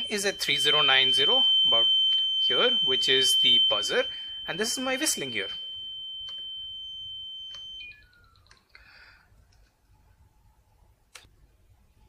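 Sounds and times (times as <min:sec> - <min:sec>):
piezo buzzer high tone: 0:00.0 - 0:08.4
faint lower tones: 0:00.0 - 0:10.9.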